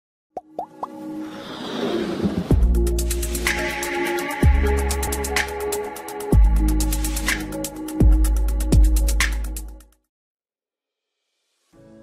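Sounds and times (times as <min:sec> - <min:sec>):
rising plop blips: 0:00.4 - 0:01.0
electronic music build-up: 0:00.6 - 0:09.6.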